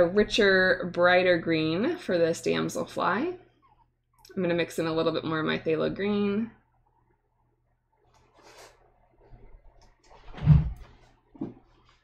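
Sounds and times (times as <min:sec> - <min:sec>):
dull thump: 0:10.3 - 0:10.8.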